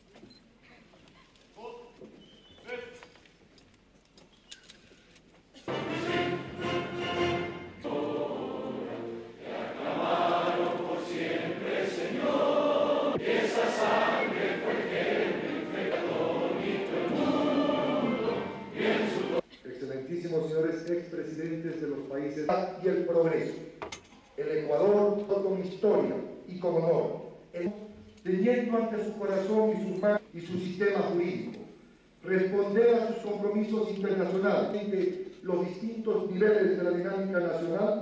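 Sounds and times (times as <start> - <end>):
crowd singing an anthem: 5.7 - 19.4.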